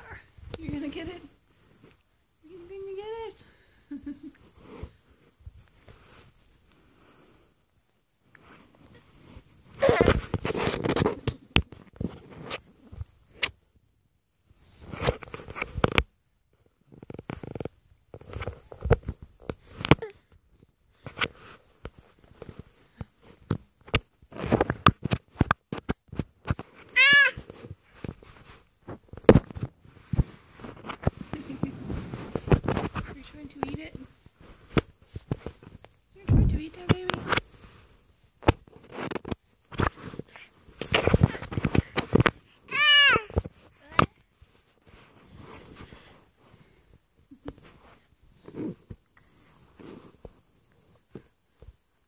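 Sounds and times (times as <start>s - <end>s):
baby squealing: 9.8s - 10.2s, 27.0s - 27.4s, 42.7s - 43.3s
baby breathy vocal sounds: 48.0s - 49.8s.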